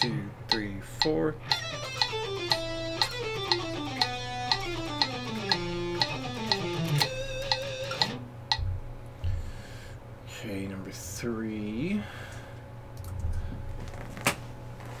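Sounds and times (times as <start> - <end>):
metronome clicking: 0.0 - 8.6
electric guitar fast scale: 1.4 - 8.3.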